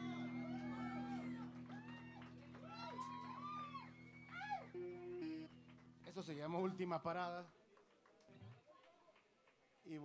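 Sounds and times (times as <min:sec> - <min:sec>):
amplifier drone: 0:00.0 - 0:06.8
electric guitar with effects: 0:00.0 - 0:06.8.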